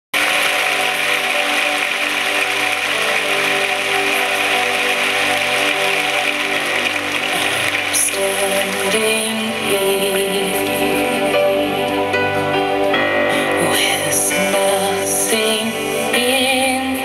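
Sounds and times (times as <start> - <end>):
audience applauding: 0.1 - 12.0.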